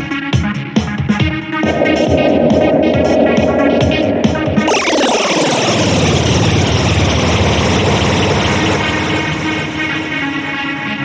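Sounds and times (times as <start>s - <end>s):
electronic music: 0.7s - 11.0s
falling pitch sweep: 1.4s - 11.0s.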